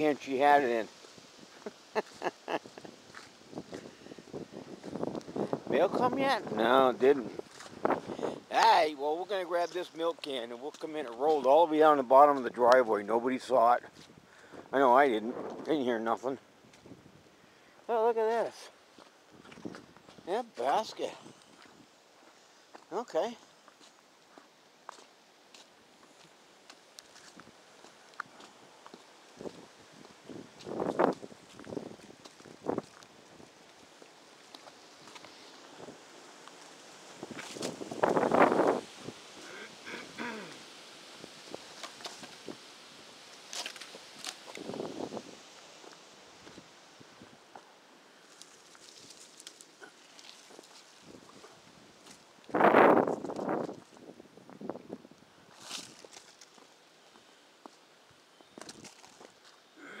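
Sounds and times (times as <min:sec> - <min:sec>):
rustling of leaves: 0:00.0 - 1:00.0
footsteps on wet asphalt: 0:01.0 - 0:05.6, 0:07.3 - 0:08.1, 0:18.9 - 0:22.9, 0:23.6 - 0:38.8, 0:47.5 - 0:54.6.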